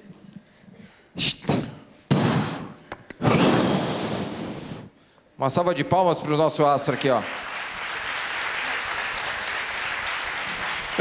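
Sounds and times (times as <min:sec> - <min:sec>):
short hissing sounds: 0:01.2 - 0:05.0
audience applause: 0:06.6 - 0:11.0.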